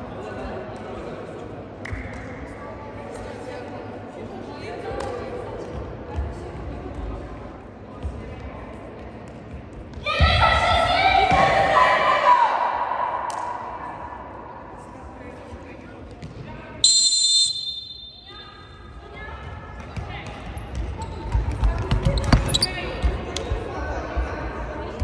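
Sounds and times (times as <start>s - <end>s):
referee's whistle: 16.8s - 18.8s.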